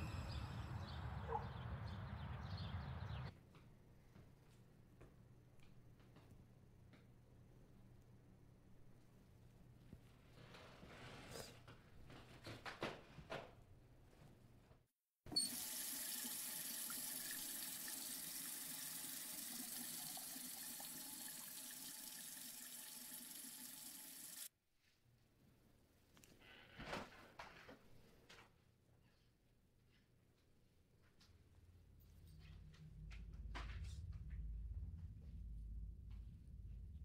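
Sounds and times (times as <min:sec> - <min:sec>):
tap water running into sink: 0:15.4 - 0:24.5.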